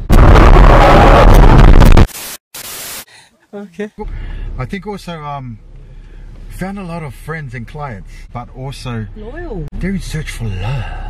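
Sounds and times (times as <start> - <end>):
distorted static burst: 0.0 - 3.1
short bursts of hiss: 2.1 - 3.1.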